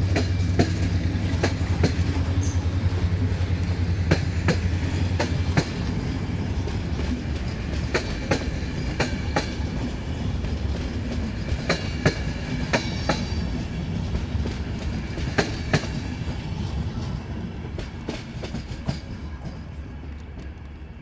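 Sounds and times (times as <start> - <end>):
train wheels clicking over rail joints: 0.0 - 20.8
low rumble of wheels on rail: 0.0 - 21.0.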